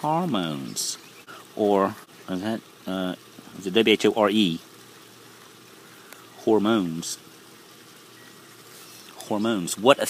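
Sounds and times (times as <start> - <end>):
person speaking: 0.0 - 4.7, 6.2 - 7.3, 8.8 - 10.0
faint outdoor background noise: 0.0 - 10.0.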